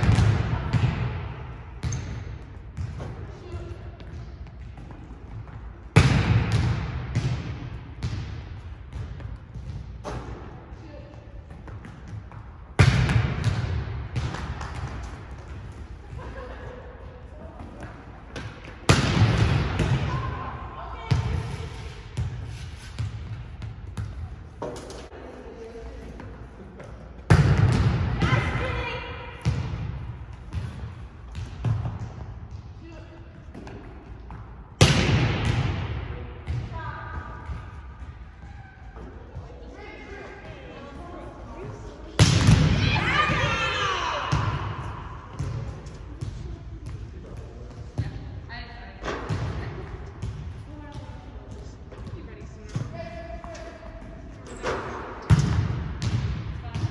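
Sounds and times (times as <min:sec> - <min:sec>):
ball bouncing on gym floor: 0:00.0 - 0:16.4, 0:17.3 - 0:25.1, 0:26.2 - 0:39.6, 0:41.6 - 0:56.9.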